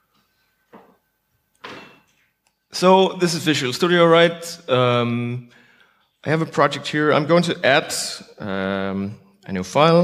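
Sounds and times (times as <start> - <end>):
man speaking into a microphone: 2.7 - 5.6, 6.2 - 10.0.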